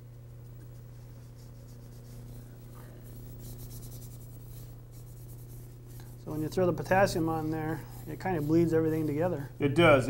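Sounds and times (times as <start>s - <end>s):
steady low hum: 0.0s - 10.0s
paintbrush scratchy strokes: 0.6s - 9.6s.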